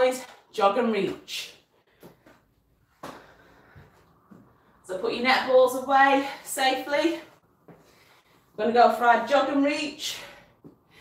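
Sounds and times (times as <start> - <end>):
faint footsteps: 1.8 - 4.8, 7.2 - 8.5.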